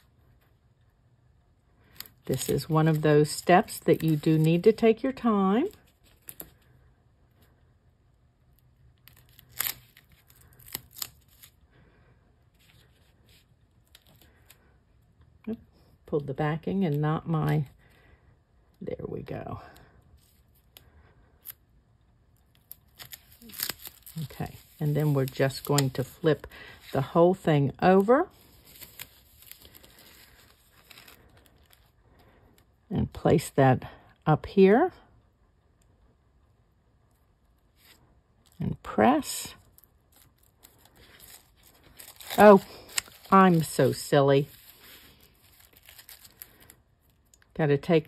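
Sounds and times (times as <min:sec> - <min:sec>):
paper and plastic rustling: 0:22.9 - 0:27.2, 0:28.3 - 0:31.9, 0:39.6 - 0:47.2.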